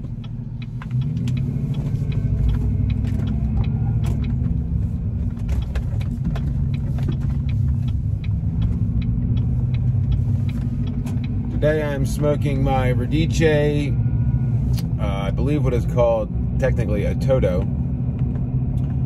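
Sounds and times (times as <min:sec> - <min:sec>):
vehicle engine and road rumble: 0:00.0 - 0:19.0.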